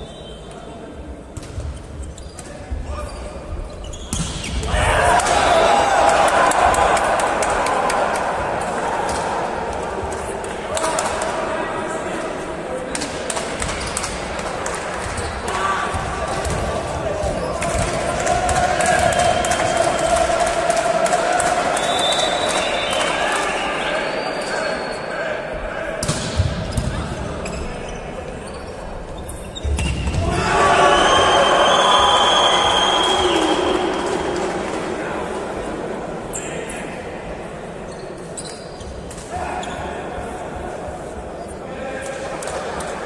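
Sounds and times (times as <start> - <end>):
people shouting in a hall: 4.5 - 12.1, 14.4 - 26.1, 29.8 - 37.4, 39.2 - 43.0.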